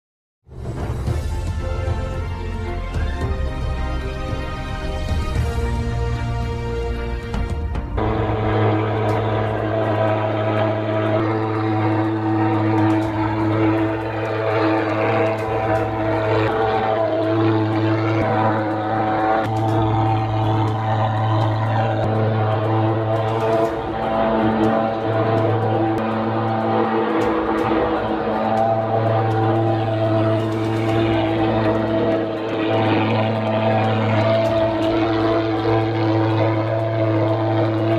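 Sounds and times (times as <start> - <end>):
fogging machine buzzing drone: 1.0 - 37.9.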